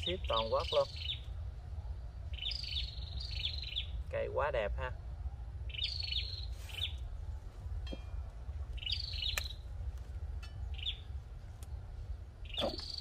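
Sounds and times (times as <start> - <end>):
songbird chirping: 0.0 - 13.0
steady low rumble: 0.0 - 13.0.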